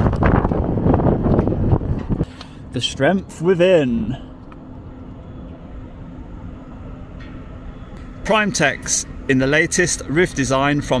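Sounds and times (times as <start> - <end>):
low outdoor rumble: 0.0 - 11.0
faint steady hum: 2.2 - 11.0.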